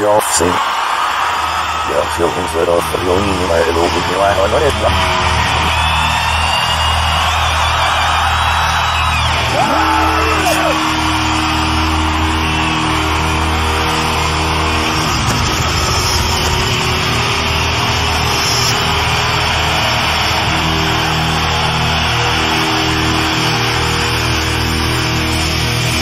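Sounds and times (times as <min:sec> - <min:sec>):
heavy metal band played backwards: 0:02.4 - 0:26.0.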